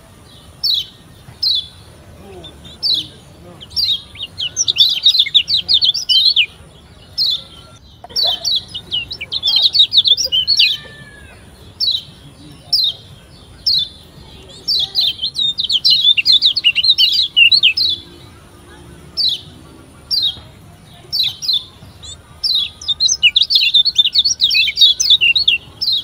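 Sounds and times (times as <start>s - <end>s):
bird chattering chirps: 0.4s - 26.0s.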